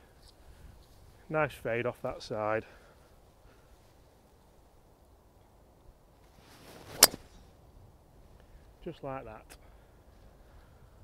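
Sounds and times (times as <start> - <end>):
golf club swish: 6.4 - 7.5
golf club striking ball: 6.9 - 7.4.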